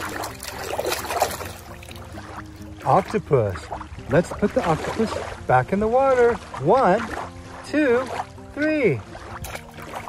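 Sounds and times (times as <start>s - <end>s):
water splashing and dripping: 0.0s - 10.0s.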